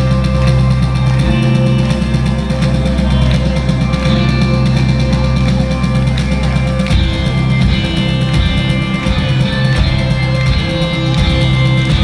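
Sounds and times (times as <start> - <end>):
distorted electric guitars: 0.0 - 12.0
drum kit: 0.0 - 12.0.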